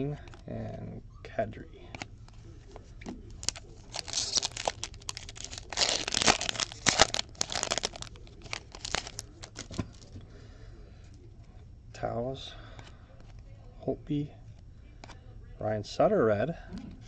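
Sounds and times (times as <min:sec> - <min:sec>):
cards rustling: 0:02.0 - 0:10.2
foil wrapper tearing and crinkling: 0:03.4 - 0:10.1.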